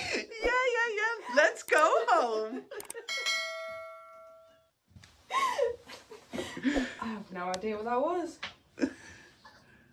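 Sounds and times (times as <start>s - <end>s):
bell chime: 3.1s - 4.7s.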